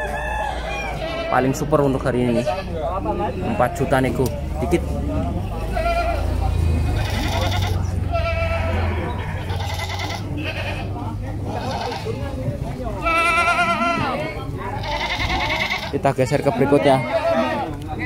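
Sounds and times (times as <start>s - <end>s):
goats bleating: 0.8s - 2.9s, 5.5s - 12.2s, 12.9s - 16.0s, 16.6s - 17.8s.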